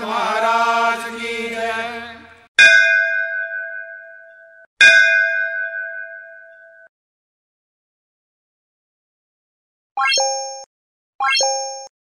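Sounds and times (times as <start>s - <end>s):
synthetic pop and ding effect: 2.6s - 6.9s, 10.0s - 11.9s.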